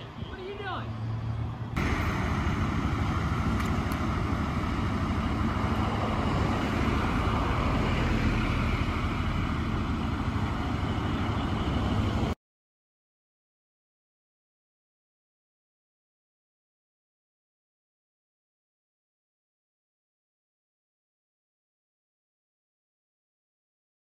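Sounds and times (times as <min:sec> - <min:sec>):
engine idling: 0:00.0 - 0:12.3
rush of noise: 0:01.1 - 0:12.4.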